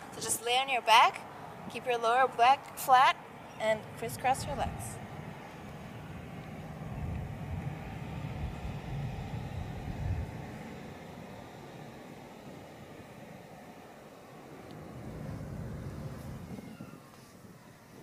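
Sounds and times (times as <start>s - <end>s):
wind buffeting microphone: 3.3s - 18.0s.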